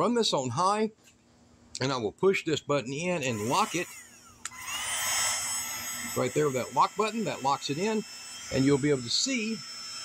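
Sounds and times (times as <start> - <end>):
heat gun fan blowing with whine: 2.8 - 10.0.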